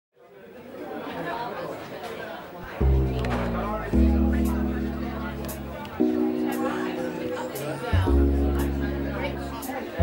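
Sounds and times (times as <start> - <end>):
crowd chattering: 0.2 - 10.0.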